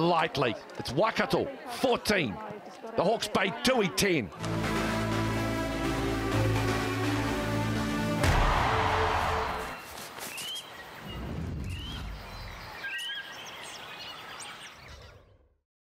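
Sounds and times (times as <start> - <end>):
rising bird-like chirps: 9.7 - 15.4.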